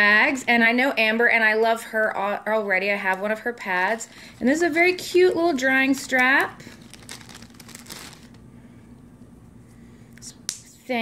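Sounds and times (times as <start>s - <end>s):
faint steady hum: 0.0s - 11.0s
plastic zip bag crinkling: 3.7s - 8.4s.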